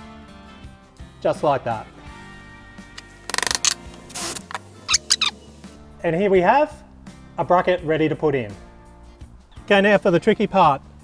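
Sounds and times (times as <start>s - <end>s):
soft background music: 0.0s - 11.0s
metal parts clicking: 3.3s - 5.3s.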